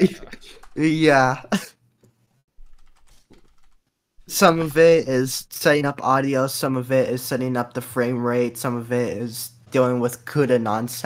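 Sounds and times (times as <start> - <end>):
typing on computer keyboard: 2.6 - 3.8.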